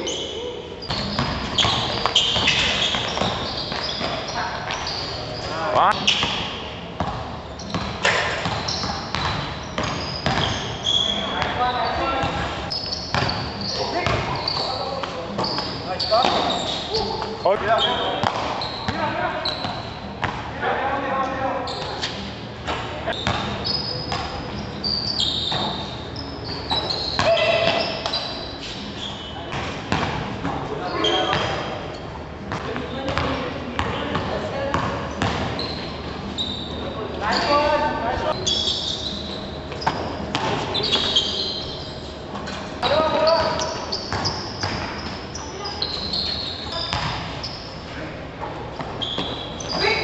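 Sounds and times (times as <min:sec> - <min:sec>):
short high squeaks: 0:00.0 - 0:06.2, 0:08.6 - 0:12.1, 0:12.7 - 0:20.1, 0:23.1 - 0:29.5, 0:30.8 - 0:32.0, 0:35.5 - 0:42.2, 0:42.9 - 0:47.9, 0:49.0 - 0:50.0
basketball bouncing on court: 0:00.8 - 0:05.0, 0:06.0 - 0:20.5, 0:23.1 - 0:24.6, 0:25.4 - 0:28.3, 0:29.5 - 0:31.7, 0:32.5 - 0:35.9, 0:39.8 - 0:41.2, 0:43.2 - 0:45.2, 0:45.8 - 0:47.4.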